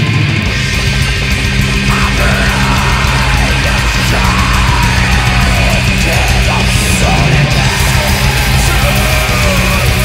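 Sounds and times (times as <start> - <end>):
distorted guitars: 0.0 - 10.0
fast drumming: 0.5 - 10.0.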